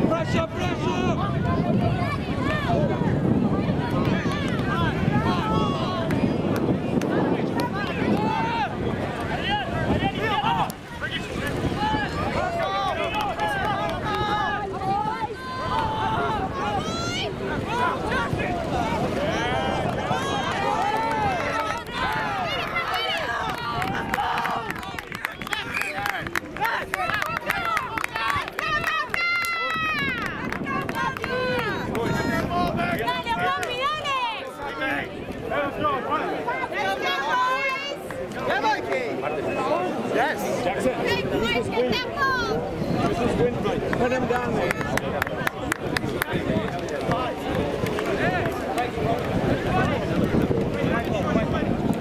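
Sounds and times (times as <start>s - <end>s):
wind rumble on microphone: 0.0s - 38.5s, 39.4s - 52.0s
people shouting: 7.6s - 35.0s.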